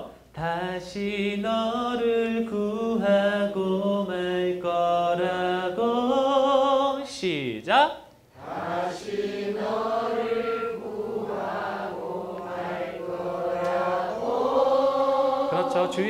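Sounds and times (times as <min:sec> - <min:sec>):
voices singing a slow ballad: 0:00.0 - 0:07.0, 0:08.3 - 0:16.0.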